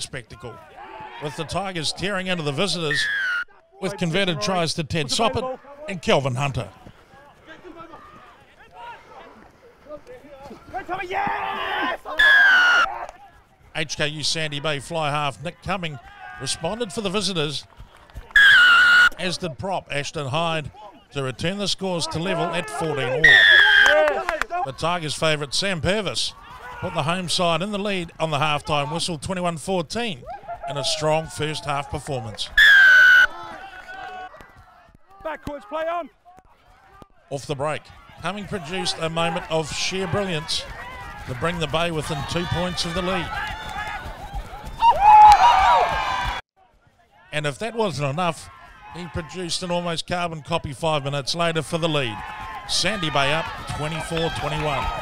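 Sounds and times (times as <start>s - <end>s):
players shouting: 0.0s - 55.0s
referee's whistle blast: 2.9s - 3.5s, 18.3s - 19.2s, 23.2s - 24.0s, 32.6s - 33.3s.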